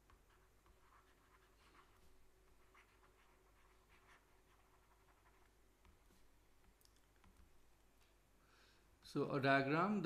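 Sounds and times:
stylus writing on a tablet: 0:00.0 - 0:07.8.

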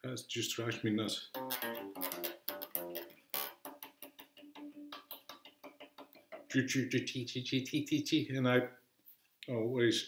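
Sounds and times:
unamplified bass guitar notes: 0:01.3 - 0:05.4.

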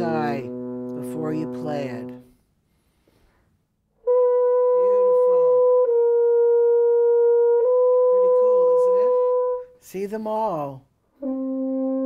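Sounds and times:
french horn holding notes: 0:00.0 - 0:02.4, 0:04.0 - 0:10.5, 0:11.1 - 0:12.0.

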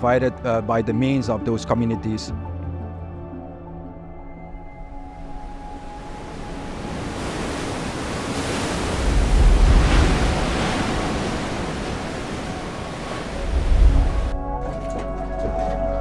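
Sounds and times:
ocean surf: 0:05.2 - 0:14.4
wind on microphone: 0:05.5 - 0:14.4.

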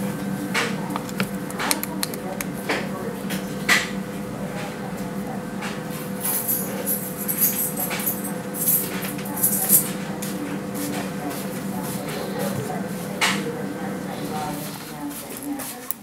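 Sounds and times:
steady low hum: 0:00.0 - 0:15.6.

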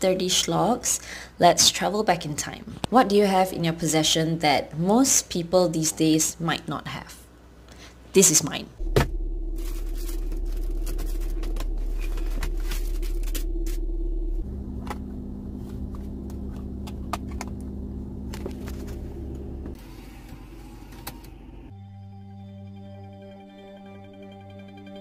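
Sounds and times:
car engine idling: 0:08.8 - 0:19.8.

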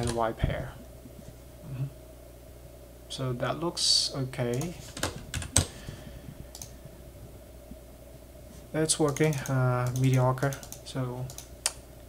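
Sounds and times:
keyboard and mouse clicks: 0:06.5 - 0:06.7, 0:09.0 - 0:11.8.

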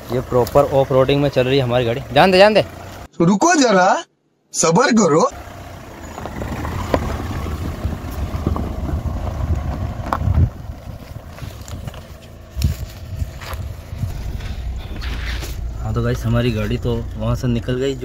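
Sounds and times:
car driving over stony track: 0:05.4 - 0:17.4
wind on microphone: 0:06.4 - 0:15.5.

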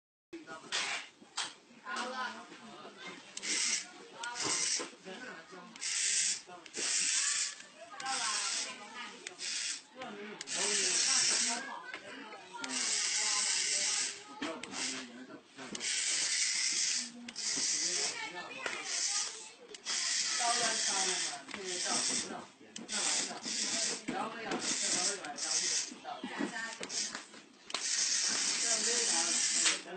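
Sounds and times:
voices: 0:01.9 - 0:29.9
hissing bursts: 0:05.8 - 0:11.6, 0:18.8 - 0:22.3, 0:22.9 - 0:25.9, 0:26.8 - 0:29.8.

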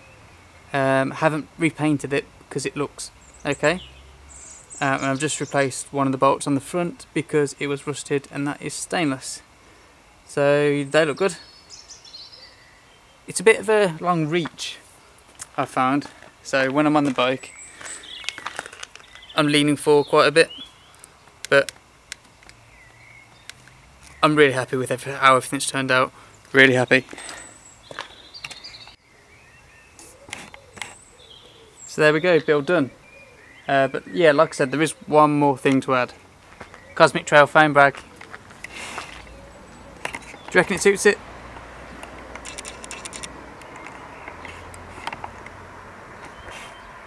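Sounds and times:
small sharp clicks: 0:21.0 - 0:22.6, 0:23.4 - 0:24.2, 0:41.6 - 0:45.6.

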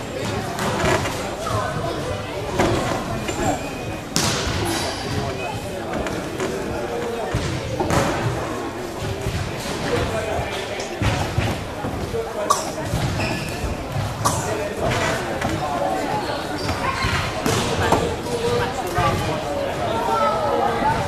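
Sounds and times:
voices in large hall: 0:00.0 - 0:21.0.

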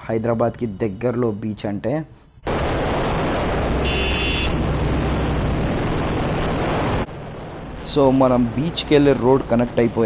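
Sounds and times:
wind and road noise: 0:00.0 - 0:10.0
motorcycle engine drone: 0:02.4 - 0:10.0.

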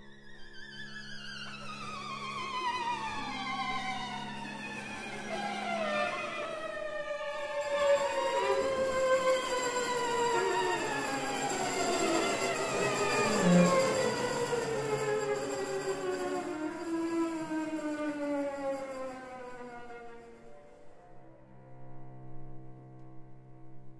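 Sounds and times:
string quartet glissandi: 0:00.5 - 0:20.6.

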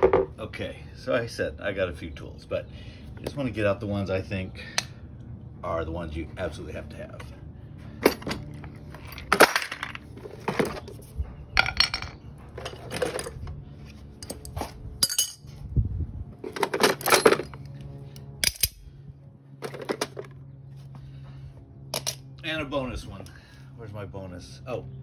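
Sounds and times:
steel tools clinking: 0:14.2 - 0:15.5, 0:16.5 - 0:17.8.

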